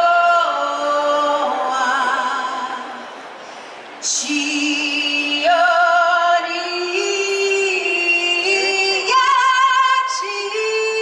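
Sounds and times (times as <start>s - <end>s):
woman singing over pa: 4.0s - 11.0s.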